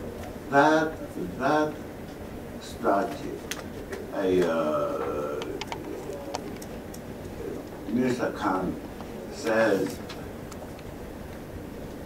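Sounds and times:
man speaking: 0:04.1 - 0:06.6, 0:07.9 - 0:10.0.

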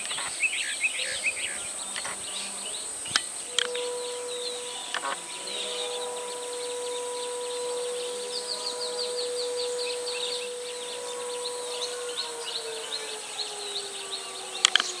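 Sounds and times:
birds chirping: 0:00.0 - 0:15.0
siren-like tone: 0:03.5 - 0:15.0.

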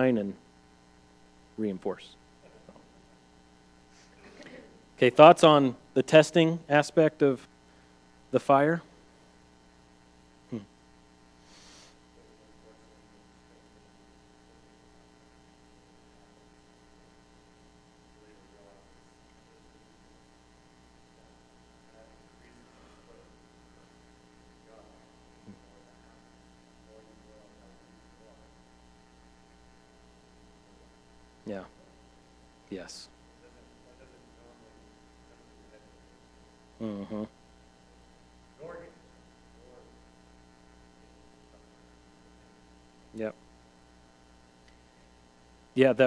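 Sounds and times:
low electrical mains hum: 0:00.0 - 0:46.0
faint far-off voice: 0:36.8 - 0:37.3.

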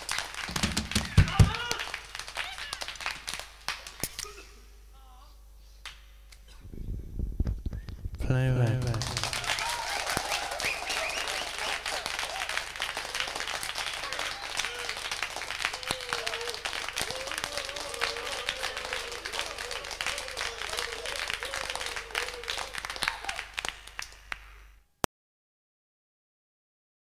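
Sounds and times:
many hands clapping: 0:00.0 - 0:04.3, 0:08.6 - 0:24.8
voices calling out: 0:09.4 - 0:23.5.

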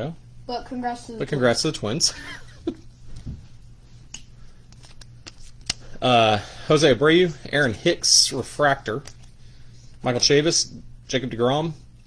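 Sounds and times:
faint clicks of card edges: 0:04.1 - 0:05.8
cards being flipped: 0:04.1 - 0:05.9.

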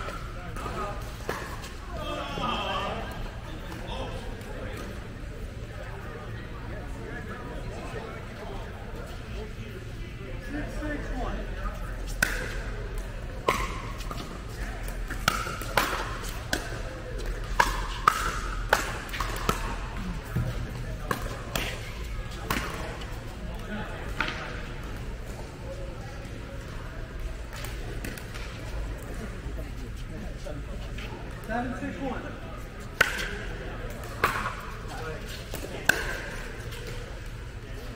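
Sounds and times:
paddles hitting plastic ball: 0:12.1 - 0:21.8.

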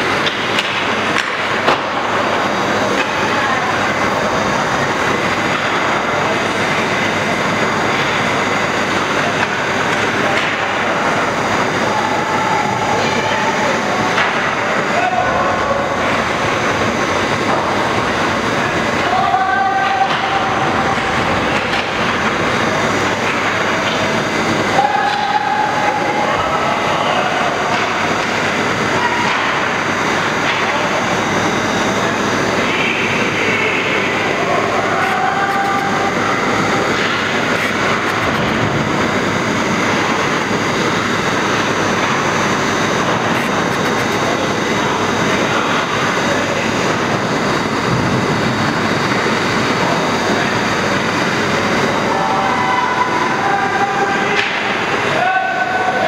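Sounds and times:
loud ice rink noise: 0:00.0 - 0:56.0.

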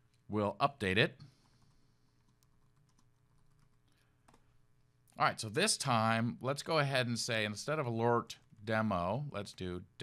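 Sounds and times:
computer keyboard typing clicks: 0:02.2 - 0:04.4.

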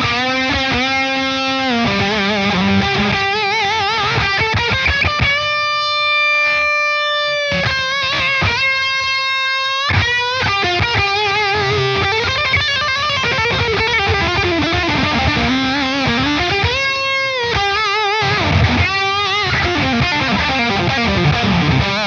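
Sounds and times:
fuzz electric guitar lead: 0:00.0 - 0:22.0.

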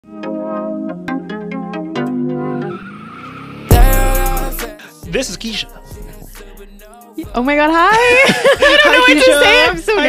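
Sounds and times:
tyres screeching with rumble: 0:02.5 - 0:04.4.

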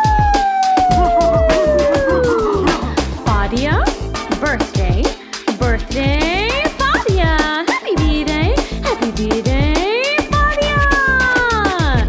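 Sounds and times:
celebration song with steady beat: 0:00.0 - 0:12.0.

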